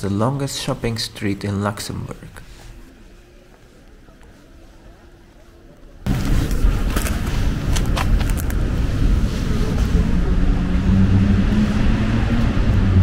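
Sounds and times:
low rumble of street: 2.3 - 13.0.

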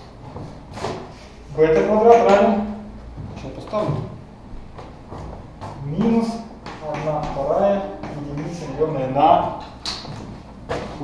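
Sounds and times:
person talking: 1.5 - 4.2, 5.8 - 9.7.

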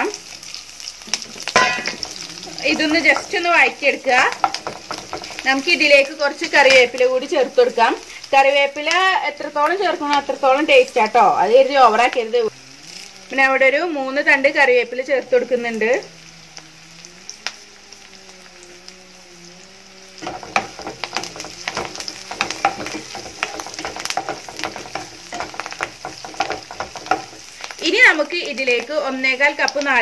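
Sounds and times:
food sizzling in hot oil: 0.0 - 30.0
wooden spatula scraping a pan: 0.3 - 6.8, 20.2 - 27.8.

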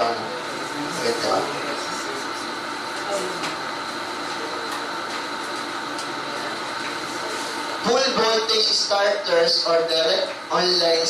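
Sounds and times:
faint hum tones: 0.0 - 11.0.

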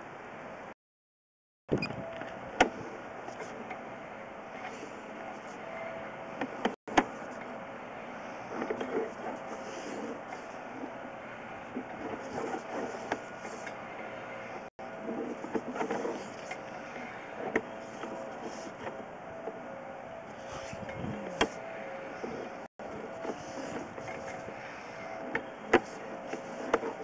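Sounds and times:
steady hum: 1.7 - 27.0.

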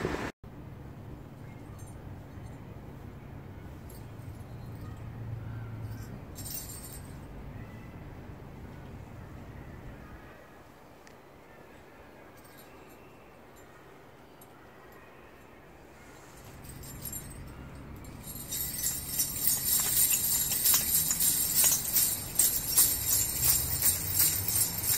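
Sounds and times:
jingle bells ringing: 5.8 - 7.3, 16.1 - 24.9.

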